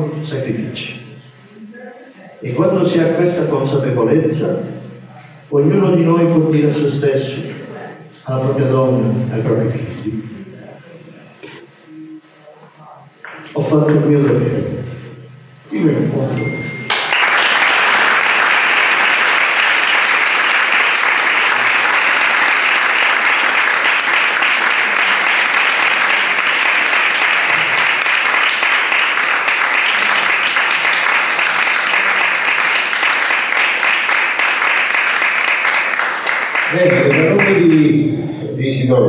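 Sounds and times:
audience applauding: 0:16.5 - 0:38.1.

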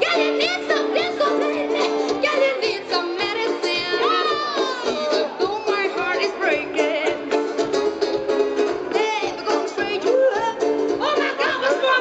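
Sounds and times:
contrabass balalaika: 0:00.0 - 0:12.0
drums keeping a quick beat: 0:00.0 - 0:12.0
plucked banjo: 0:00.0 - 0:12.0.

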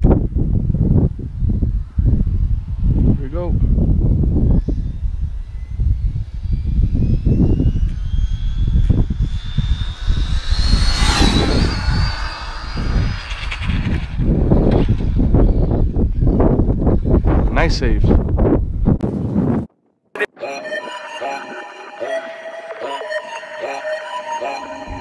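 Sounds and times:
wind rumble on microphone: 0:00.0 - 0:19.7
rc car motor whine: 0:01.6 - 0:17.0.

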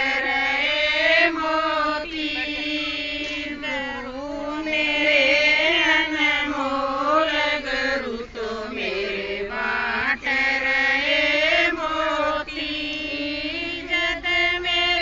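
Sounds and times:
women singing in unison: 0:00.0 - 0:15.0.

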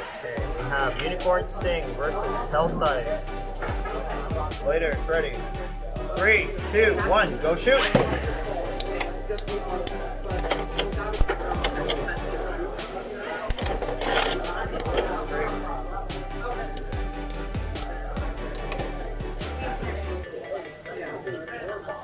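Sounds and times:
background music: 0:00.0 - 0:22.0
chatter: 0:00.0 - 0:22.0.

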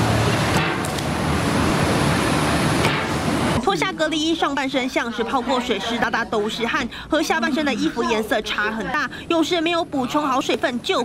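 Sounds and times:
traffic-like rumble and hiss: 0:00.0 - 0:11.0.

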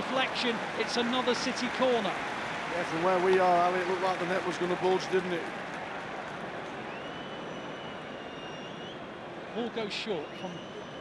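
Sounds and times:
stadium crowd noise: 0:00.0 - 0:11.0
faint high whistle: 0:06.9 - 0:09.1, 0:10.0 - 0:11.0.

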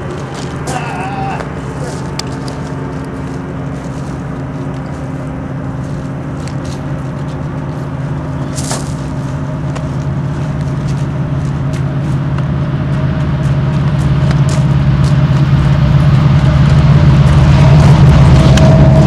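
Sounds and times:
heavy engine rumble: 0:00.0 - 0:19.0
thin steady whine: 0:00.0 - 0:19.0.

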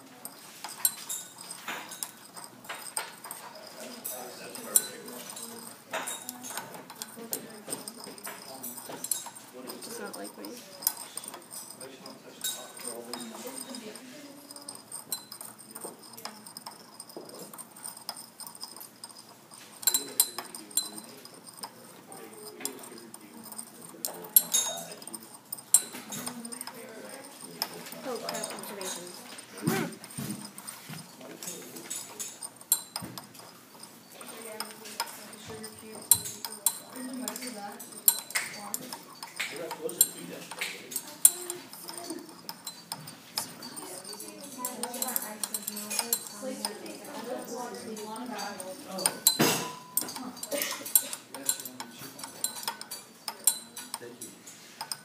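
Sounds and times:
stirring rod clinking on glass: 0:00.0 - 0:55.0.

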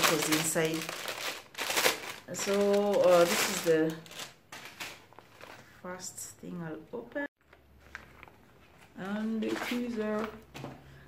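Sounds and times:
plastic packaging crinkling: 0:00.0 - 0:05.8.

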